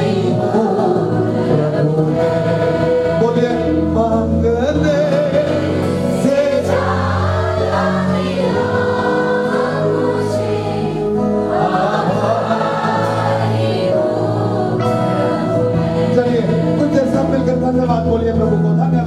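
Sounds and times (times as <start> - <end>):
backing singers: 0.0 - 4.4, 5.1 - 17.4
male lead singer: 0.0 - 6.7
band with keyboard and guitar: 0.0 - 19.0.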